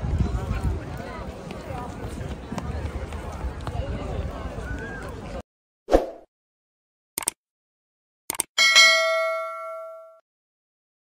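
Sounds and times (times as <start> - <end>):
notification bell ding: 8.6 - 10.2.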